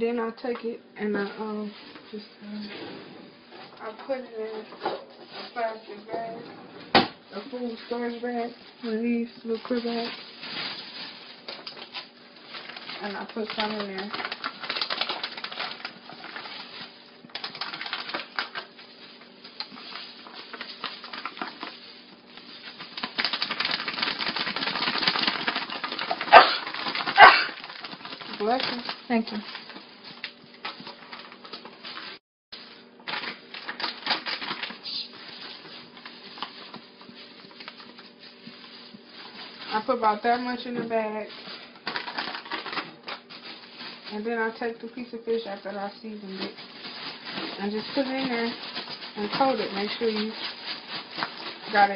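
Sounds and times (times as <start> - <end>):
plastic bags crinkling: 3.7 - 6.4, 7.2 - 51.9
sharp bag crackles: 7.2 - 44.4, 46.1 - 51.9.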